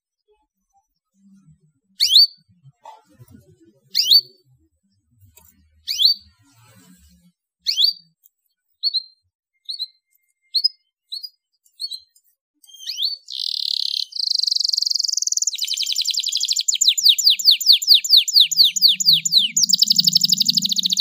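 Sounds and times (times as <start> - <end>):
canary chirping and trilling: 0.6 - 21.0.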